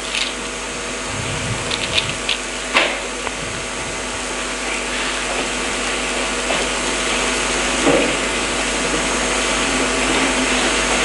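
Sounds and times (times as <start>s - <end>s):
hum of steady tones: 0.0s - 11.0s
loud steady hiss: 0.0s - 11.0s.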